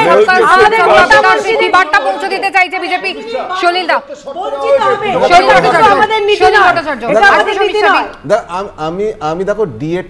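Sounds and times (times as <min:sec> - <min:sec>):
people talking over one another: 0:00.0 - 0:08.2.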